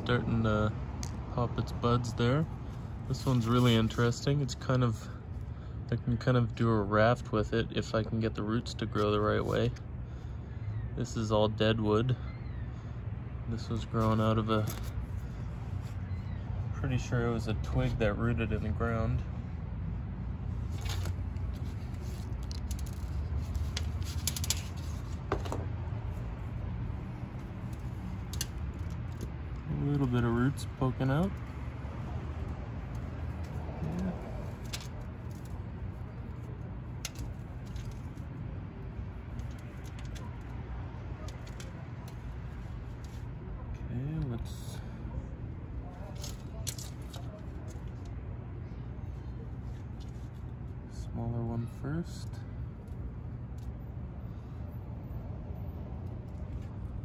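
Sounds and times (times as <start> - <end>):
low background hum: 0.0 - 57.0.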